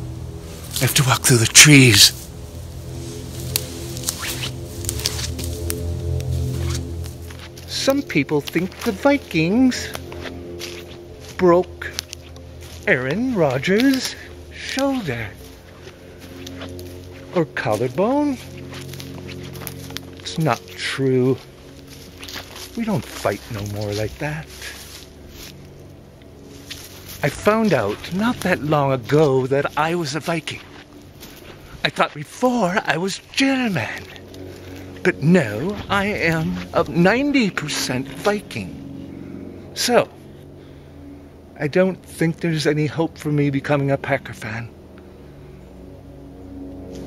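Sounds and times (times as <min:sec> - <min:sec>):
background music with low notes: 0:00.0 - 0:31.8
footsteps on pine needles: 0:00.2 - 0:39.2.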